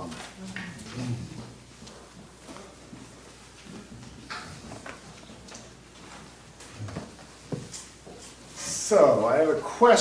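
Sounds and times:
light knocks and rustles: 0:02.4 - 0:08.4.

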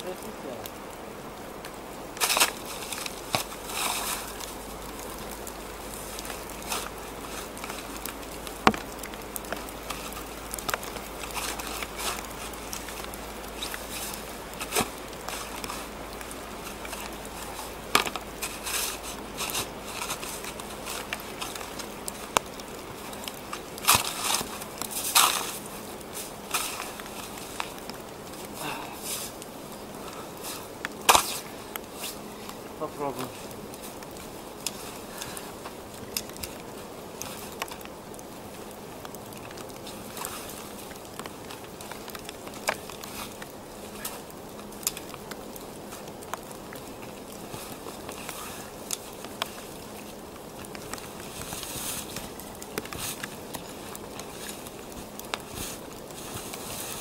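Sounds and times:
snow crunching: 0:00.0 - 0:57.0
shovel scraping in snow: 0:03.7 - 0:04.3, 0:23.8 - 0:25.6.

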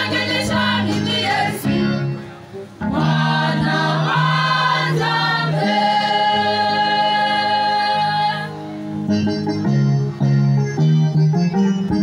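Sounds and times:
choir singing into microphones: 0:00.0 - 0:02.2, 0:02.8 - 0:08.8.

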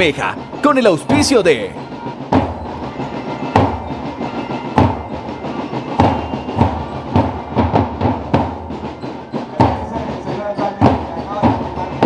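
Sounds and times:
drum-led march music: 0:00.0 - 0:12.0.

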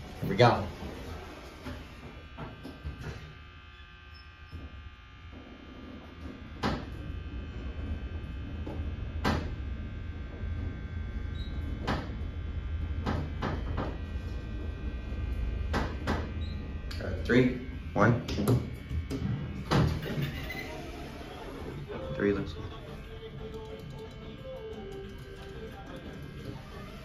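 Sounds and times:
elevator pump motor humming: 0:00.0 - 0:27.0.

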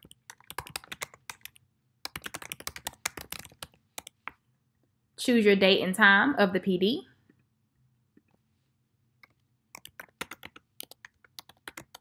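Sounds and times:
keyboard typing: 0:00.0 - 0:04.4, 0:09.2 - 0:12.0.

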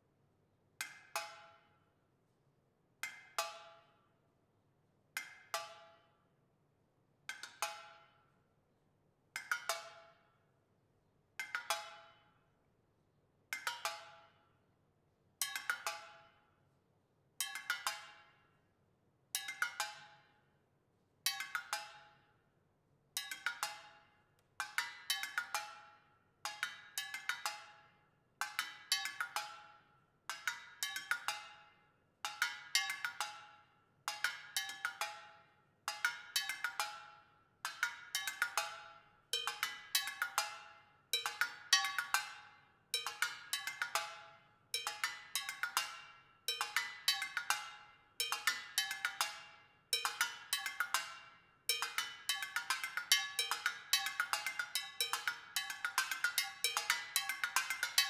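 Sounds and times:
metal percussion strikes: 0:51.7 - 0:58.0.

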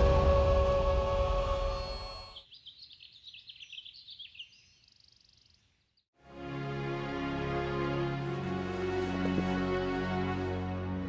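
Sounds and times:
background music sustained tones: 0:00.0 - 0:02.5, 0:06.2 - 0:11.0
birds chirping: 0:01.6 - 0:06.1.

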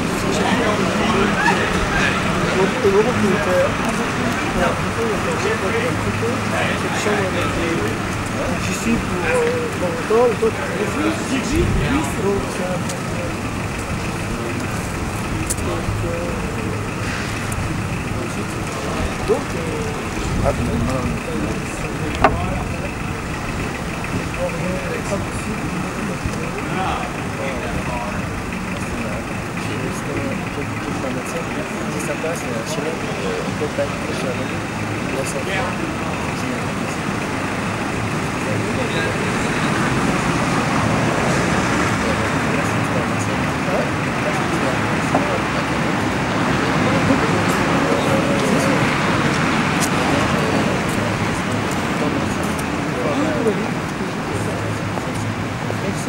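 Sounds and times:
hubbub of indistinct voices: 0:00.0 - 0:56.0
motor vehicle rumble: 0:00.0 - 0:56.0
passing traffic: 0:00.0 - 0:56.0
street noise hiss: 0:00.0 - 0:56.0.

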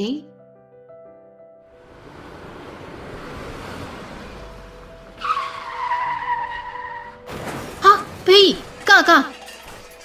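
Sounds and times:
car road noise: 0:01.7 - 0:08.9
tyres screeching: 0:02.0 - 0:08.9.

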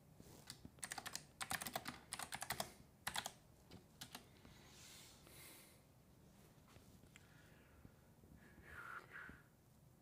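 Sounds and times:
typing on computer keyboard: 0:00.4 - 0:03.4, 0:04.0 - 0:04.3.

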